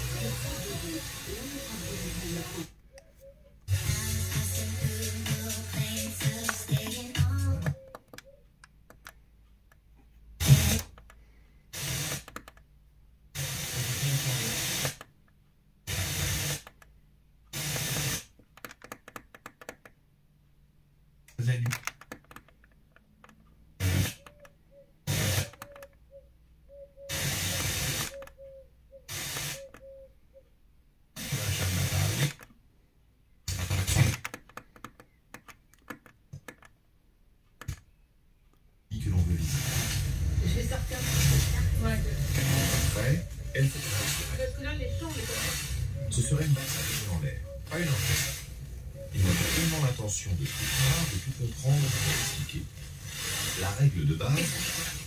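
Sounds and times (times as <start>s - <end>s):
radio static hiss: 0.0s - 2.8s, 10.4s - 10.9s, 11.8s - 12.4s, 13.4s - 15.0s, 15.9s - 16.7s, 17.6s - 18.3s, 23.8s - 24.3s, 25.1s - 25.8s, 27.1s - 28.3s, 29.1s - 29.8s, 31.2s - 32.4s, 33.5s - 34.2s, 38.9s - 55.0s
weak radio stations: 0.0s - 2.8s, 3.7s - 7.9s, 10.4s - 11.0s, 13.4s - 15.0s, 23.8s - 24.5s, 25.1s - 25.8s, 27.1s - 28.3s, 31.2s - 32.4s, 33.5s - 34.2s, 38.9s - 55.0s.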